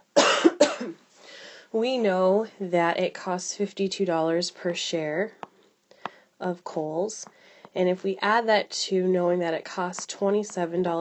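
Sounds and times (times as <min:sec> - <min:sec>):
person coughing: 0:00.2 - 0:01.0
soft intake of breath: 0:01.1 - 0:01.7, 0:07.3 - 0:07.8.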